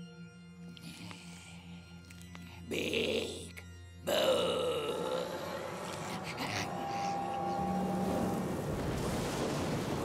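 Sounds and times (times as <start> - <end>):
eerie music with low drone: 0.0 - 10.0
cartoon monster growls: 2.7 - 7.6.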